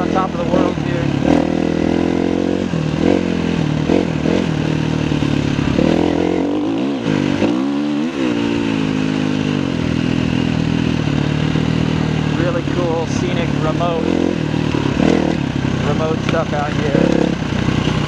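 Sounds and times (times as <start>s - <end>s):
dirt bike engine revving: 0.0s - 18.0s.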